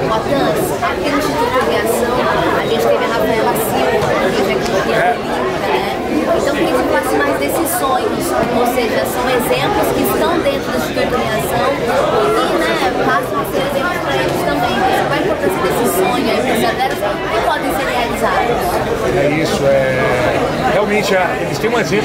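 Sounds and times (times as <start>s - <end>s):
crowd chattering in a hall: 0.0s - 22.0s.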